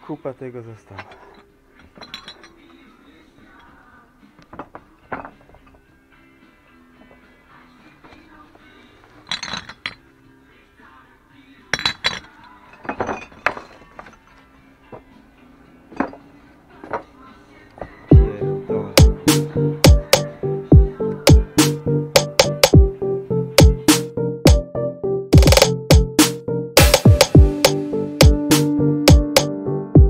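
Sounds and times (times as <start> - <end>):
faint music: 0.0 - 30.0
glass bottles clinking: 0.9 - 2.8, 4.5 - 5.8, 9.2 - 10.0, 11.7 - 14.5, 15.9 - 17.1.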